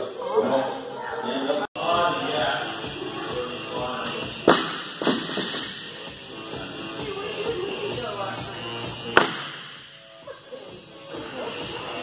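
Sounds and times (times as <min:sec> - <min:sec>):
background music: 0:01.8 - 0:12.0.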